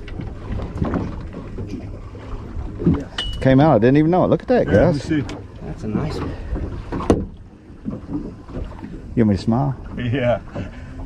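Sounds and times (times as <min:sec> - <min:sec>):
low rumble of wind: 0:00.0 - 0:11.0
water around a boat: 0:00.0 - 0:11.0.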